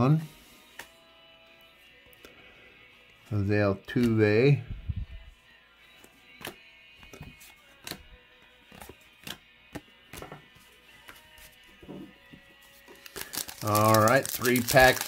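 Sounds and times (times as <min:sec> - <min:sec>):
cards snapping and tapping: 0:06.4 - 0:08.0, 0:08.7 - 0:10.4.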